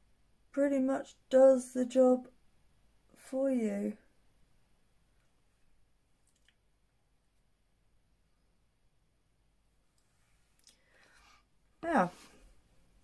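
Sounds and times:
faint small clicks: 6.2 - 6.7, 9.9 - 10.9.

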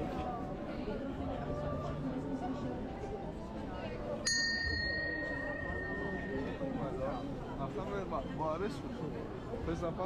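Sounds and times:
crowd chatter: 0.0 - 10.0
large metal bell ringing: 4.3 - 6.8.

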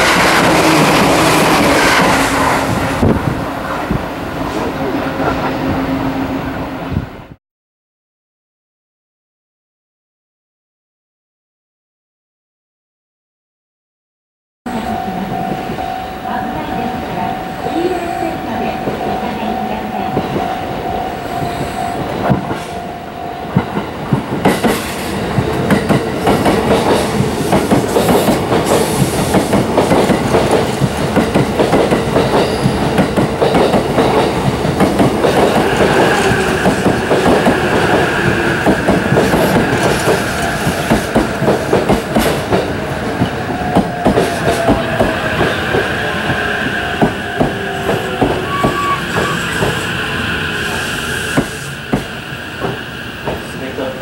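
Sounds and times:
electric train pulling in: 0.0 - 7.4, 14.7 - 54.0
train wheels clicking over rail joints: 23.5 - 50.0, 50.6 - 53.7
steady high squeal: 43.2 - 54.0.

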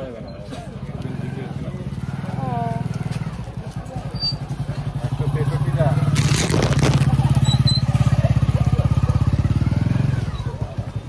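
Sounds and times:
small engine running: 1.0 - 11.0.

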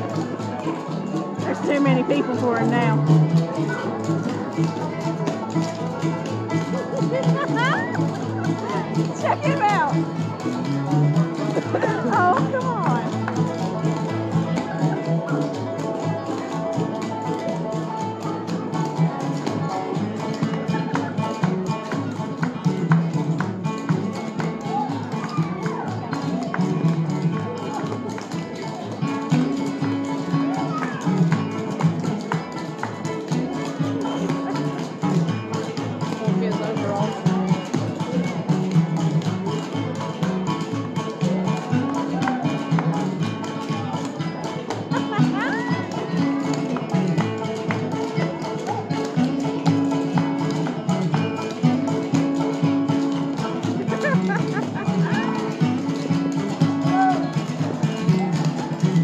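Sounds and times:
bluegrass music with plucked strings: 0.0 - 59.0
strummed guitar: 0.0 - 59.0.

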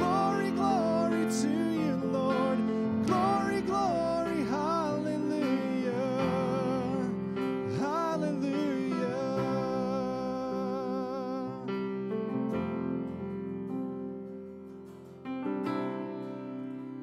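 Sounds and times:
keyboard chords: 0.0 - 17.0.

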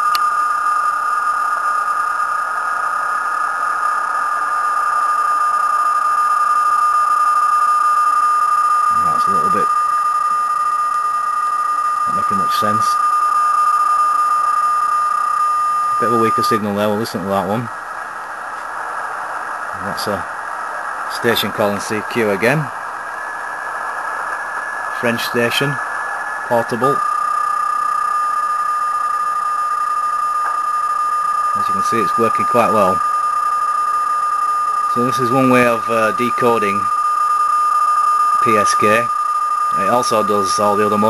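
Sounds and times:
radio band hiss: 0.0 - 41.0
steady digital signal tone: 0.0 - 41.0.

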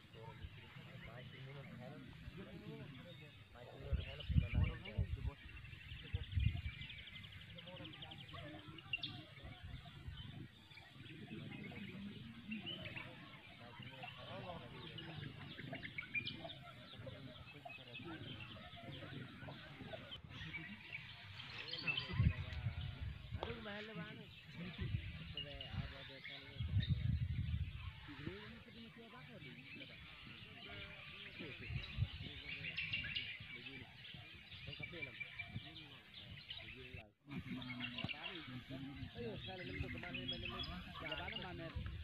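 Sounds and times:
people talking: 0.0 - 42.0
small birds chirping: 0.0 - 42.0
wind buffeting microphone: 3.8 - 7.4, 21.6 - 23.8, 24.6 - 28.4, 31.3 - 33.7, 38.8 - 42.0.

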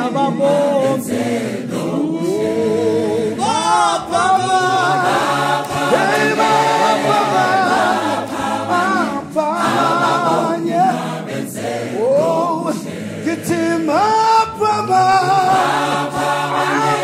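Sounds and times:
gospel choir singing a cappella: 0.0 - 17.0.

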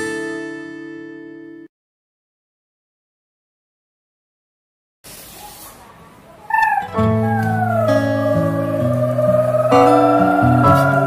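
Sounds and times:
short high-pitched cry: 6.5 - 11.0.

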